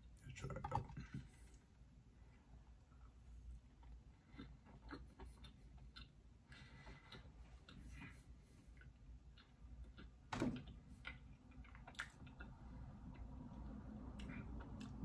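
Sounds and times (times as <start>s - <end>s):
chewing cookie: 2.8s - 15.0s.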